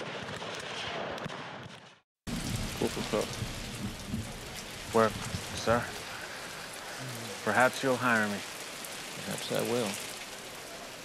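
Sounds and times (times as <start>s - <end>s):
steady rain falling: 2.3s - 11.0s.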